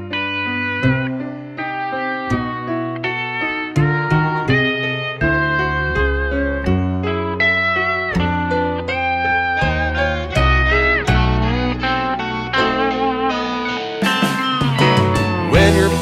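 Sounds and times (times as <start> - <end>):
country-rock band playing: 0.0 - 16.0
slide guitar: 0.0 - 16.0.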